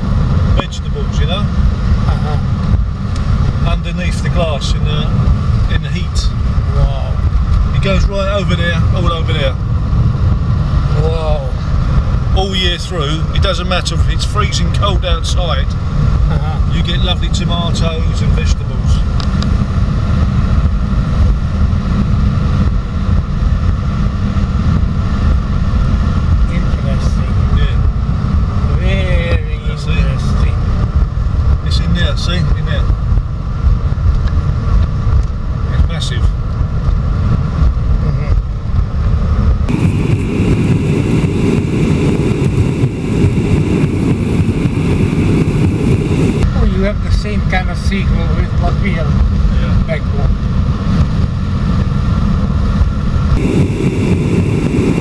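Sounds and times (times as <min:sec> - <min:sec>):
car cabin tyre and engine rumble: 0:00.0 - 0:55.0.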